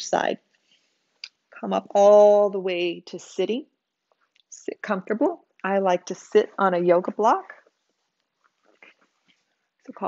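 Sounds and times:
woman's voice: 0.0s - 0.4s, 1.6s - 3.7s, 4.5s - 7.6s.

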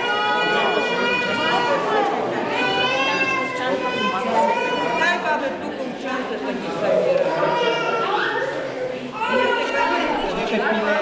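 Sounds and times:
crowd chatter in a large hall: 0.0s - 11.0s.

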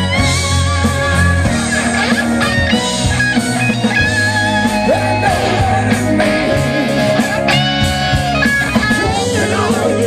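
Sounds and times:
bass guitar: 0.0s - 10.0s
drums: 0.0s - 10.0s
electric guitar lines: 0.0s - 10.0s.

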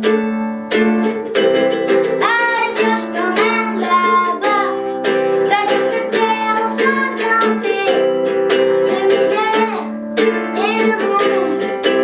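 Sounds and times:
acoustic guitar strumming: 0.0s - 12.0s
boy singing: 2.1s - 4.8s, 5.4s - 8.1s, 8.8s - 11.9s.

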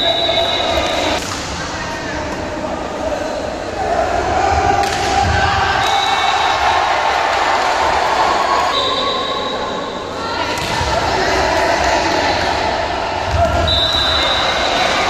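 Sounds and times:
spectators shouting and cheering: 0.0s - 15.0s.

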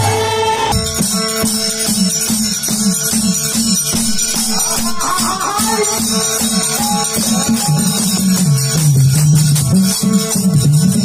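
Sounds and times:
dholak drum beating fast rhythm: 0.7s - 11.0s
jingling hand percussion: 0.7s - 11.0s
steady held note: 3.9s - 7.6s.

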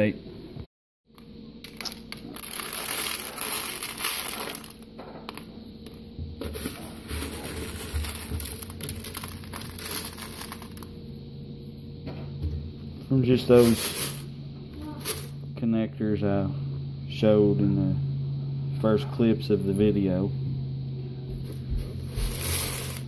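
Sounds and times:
low hum: 0.1s - 23.0s
rustling crinkling handling noise: 6.4s - 10.9s.

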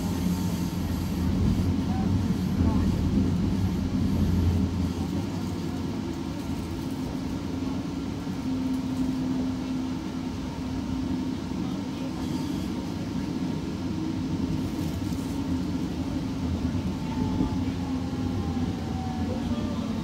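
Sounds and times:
train wheels rumbling on rail: 0.0s - 20.0s.

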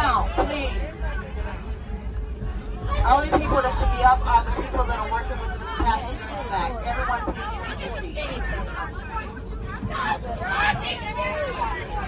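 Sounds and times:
passengers talking: 0.0s - 12.0s
steady low hum: 0.0s - 12.0s.

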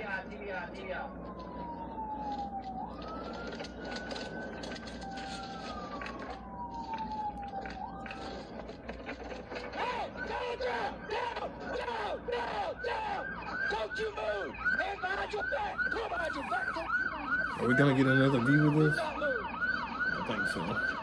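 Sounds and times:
police siren wailing: 0.0s - 21.0s.

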